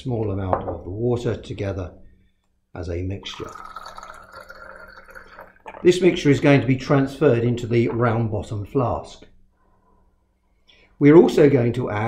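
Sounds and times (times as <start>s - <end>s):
water squirting into glass beaker: 3.2s - 6.5s.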